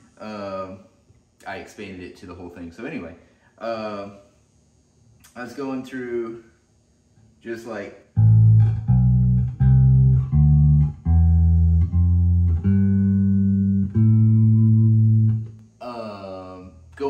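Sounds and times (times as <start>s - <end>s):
electric bass guitar notes: 8.2s - 17.0s.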